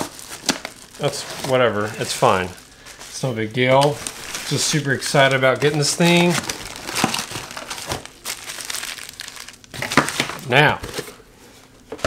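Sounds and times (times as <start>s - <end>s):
plastic packaging crinkling: 0.0s - 11.2s.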